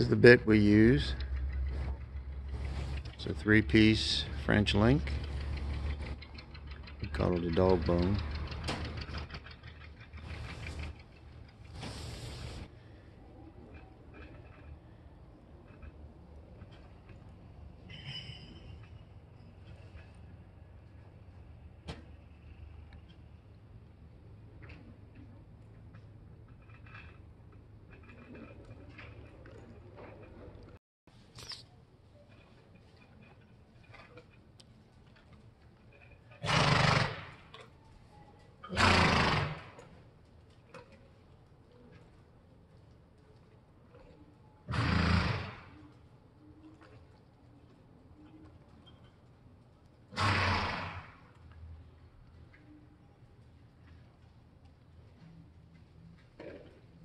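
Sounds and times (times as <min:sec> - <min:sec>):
horse calling: 0:36.3 - 0:37.6, 0:38.6 - 0:39.9.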